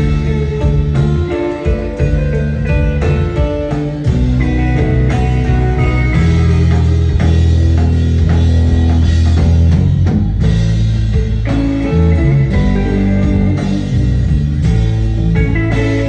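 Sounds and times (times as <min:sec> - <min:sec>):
surf rock band playing: 0:00.0 - 0:16.0.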